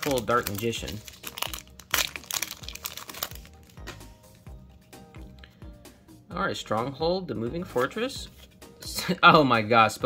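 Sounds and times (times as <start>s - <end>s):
foil wrapper crinkling: 0.0s - 3.8s
background music: 0.0s - 10.0s.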